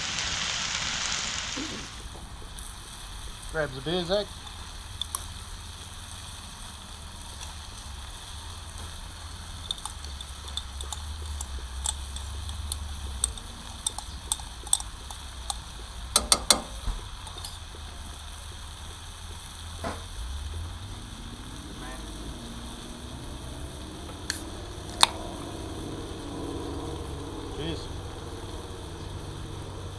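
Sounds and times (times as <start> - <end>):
wood fire crackling: 0.0 - 29.9
low steady rumble: 1.8 - 29.9.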